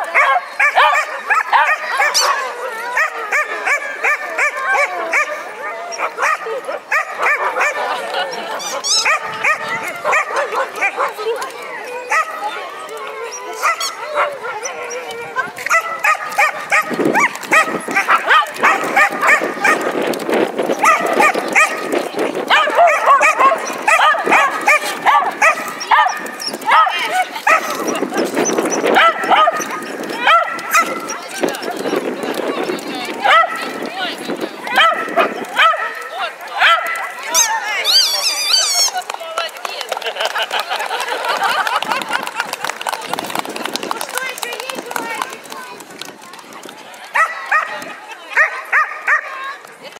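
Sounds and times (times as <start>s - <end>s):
dog barking: 0.0s - 7.9s, 8.6s - 11.2s, 13.6s - 19.8s, 20.8s - 21.9s, 22.5s - 27.9s, 29.0s - 31.2s, 33.2s - 33.6s, 34.7s - 36.0s, 36.6s - 37.1s, 47.2s - 47.7s, 48.4s - 49.3s
people talking: 0.0s - 49.9s.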